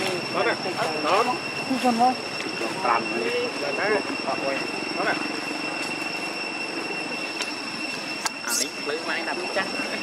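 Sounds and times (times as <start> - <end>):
two-tone insect drone: 0.0 - 10.0.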